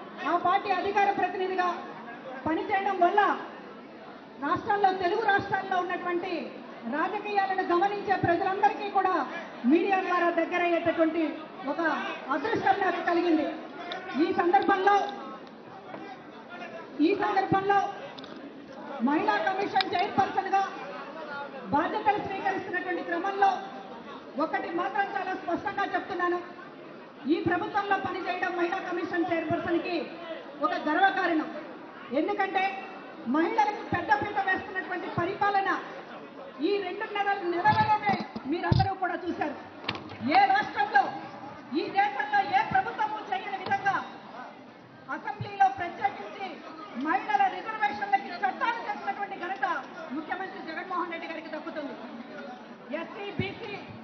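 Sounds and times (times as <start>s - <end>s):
woman speaking into a microphone: 0.0s - 3.6s, 4.4s - 15.2s, 17.0s - 18.0s, 19.0s - 20.8s, 21.6s - 26.6s, 27.2s - 36.0s, 36.6s - 44.3s, 45.0s - 52.0s, 52.9s - 54.0s
background chatter: 0.0s - 54.0s.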